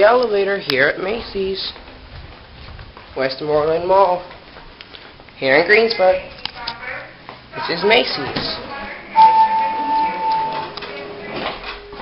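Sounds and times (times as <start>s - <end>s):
elevator chime tone: 9.1s - 12.0s.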